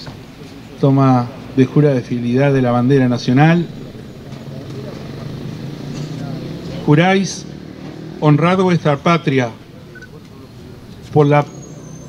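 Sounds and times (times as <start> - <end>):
car passing: 0.0 - 12.0
man speaking over loudspeaker: 0.8 - 5.5, 6.1 - 7.6, 8.2 - 9.6, 10.4 - 11.6.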